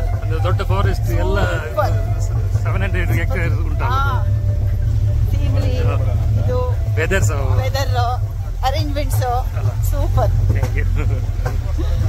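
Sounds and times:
off-road vehicle rumble: 0.0 - 12.0.

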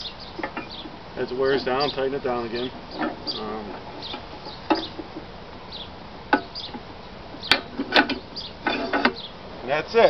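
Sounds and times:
chickens clucking: 0.0 - 9.3.

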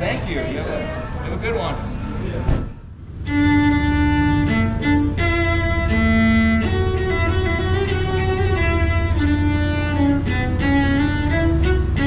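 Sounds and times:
cello playing long held notes: 3.0 - 12.0.

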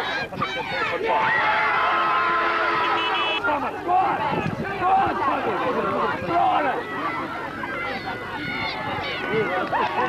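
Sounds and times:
spectators shouting and talking: 0.0 - 10.0.

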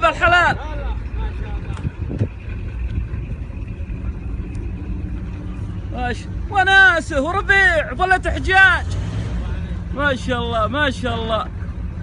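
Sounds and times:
wind buffeting microphone: 0.0 - 5.8
truck engine running: 0.0 - 12.0.

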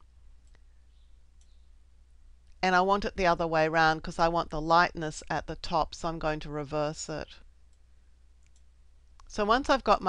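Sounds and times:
computer mouse clicks: 8.4 - 9.3.

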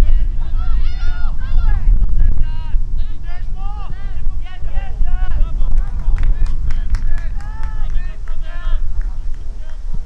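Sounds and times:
wind rumble on microphone: 0.0 - 10.0
young players shouting: 0.4 - 1.8.

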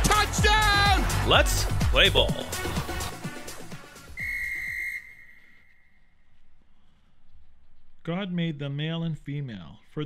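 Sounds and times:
theme music: 0.0 - 4.2
referee's whistle blast: 4.1 - 6.0.

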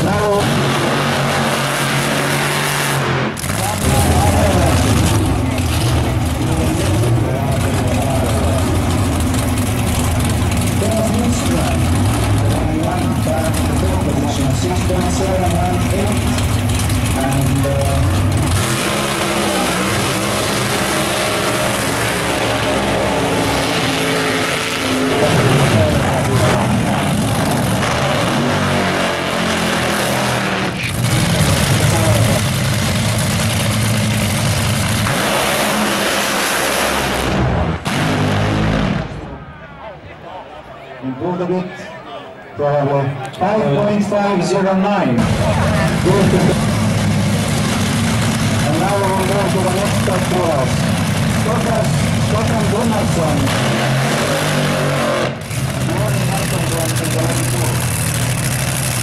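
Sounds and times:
drag racing car engines: 0.0 - 59.0.

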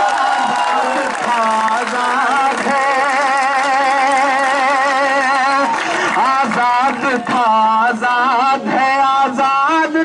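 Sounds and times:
man singing long note with vibrato: 0.9 - 10.0.

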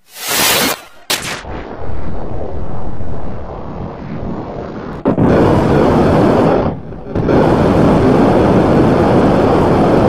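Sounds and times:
loud distorted rumbling noise: 1.6 - 10.0.

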